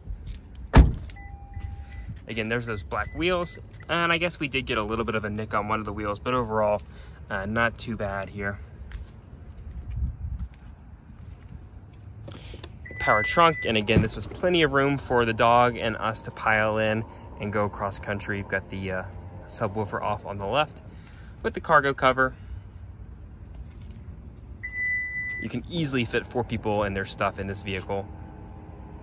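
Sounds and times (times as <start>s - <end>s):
low outdoor rumble: 0.0s - 29.0s
high steady beep: 1.2s - 2.2s, 12.8s - 13.9s, 24.6s - 25.4s
high electronic beep: 12.8s - 13.8s.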